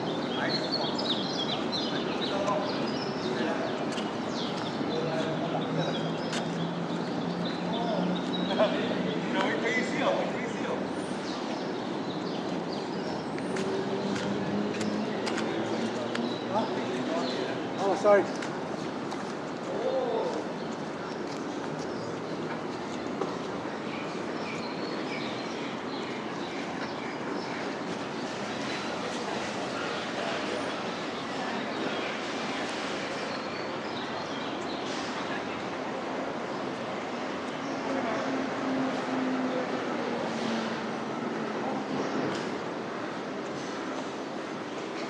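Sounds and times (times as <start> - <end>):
outdoor ambient noise: 0.0 - 45.0.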